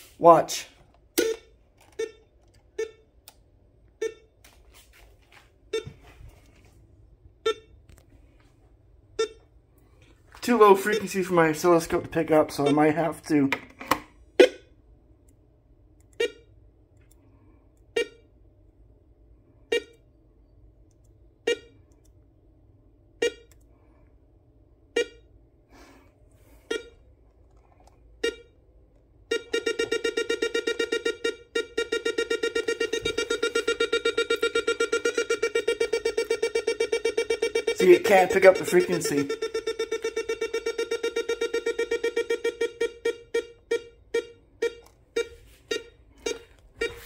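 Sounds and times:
short pitched beeps: 0:01.2 - 0:03.0, 0:29.3 - 0:47.0.

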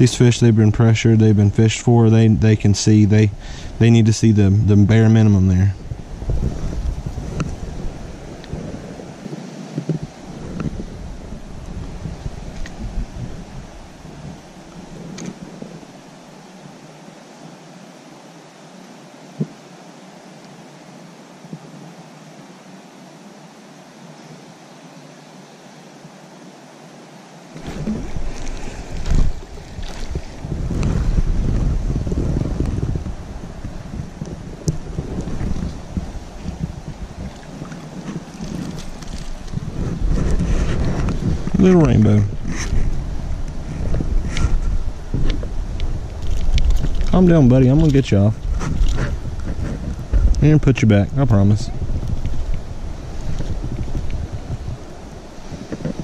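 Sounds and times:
wind buffeting microphone: 0:00.0 - 0:16.0, 0:27.6 - 0:56.0
steady hiss: 0:00.0 - 0:56.0.

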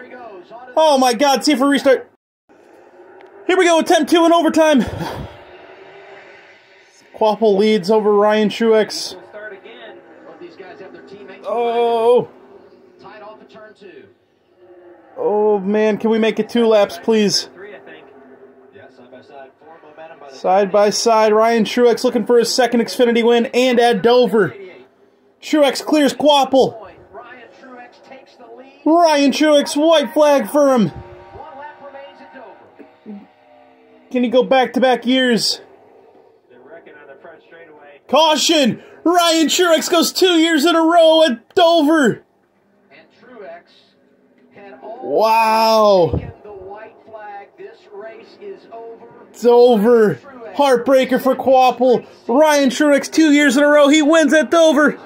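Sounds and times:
steady tone: 0:02.5 - 0:21.8, 0:22.6 - 0:39.7
man's voice: 0:03.5 - 0:05.4, 0:07.1 - 0:12.4, 0:15.1 - 0:18.2, 0:18.9 - 0:28.2, 0:28.8 - 0:33.4, 0:34.1 - 0:35.7, 0:36.6 - 0:42.2, 0:44.6 - 0:47.0, 0:48.0 - 0:55.0.

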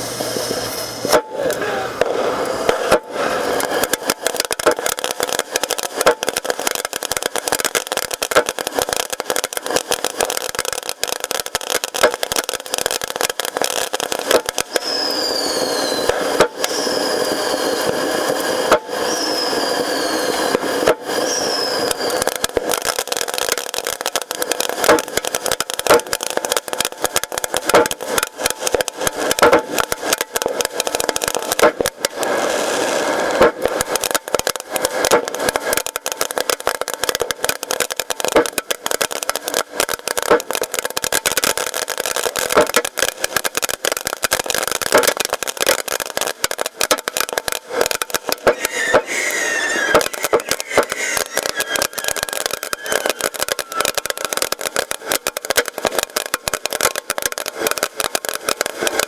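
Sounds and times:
fireworks launch pops and crackles: 0:00.0 - 0:59.0
hiss of spraying sparks: 0:00.0 - 0:59.0
whistling rockets falling whistles: 0:00.3 - 0:59.0.

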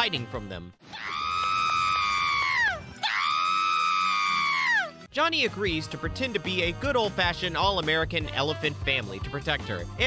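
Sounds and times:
cartoon character screaming: 0:00.9 - 0:05.0.

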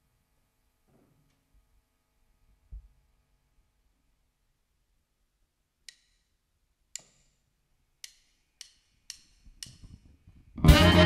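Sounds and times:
drumsticks clicking together: 0:05.8 - 0:07.4, 0:08.0 - 0:10.2.

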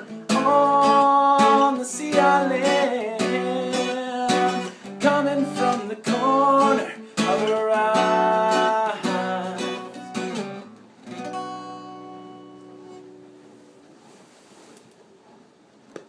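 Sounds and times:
acoustic guitar strumming: 0:00.0 - 0:13.7.

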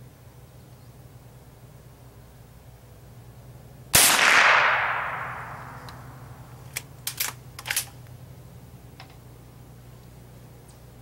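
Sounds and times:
rifle shot: 0:04.0 - 0:06.3.

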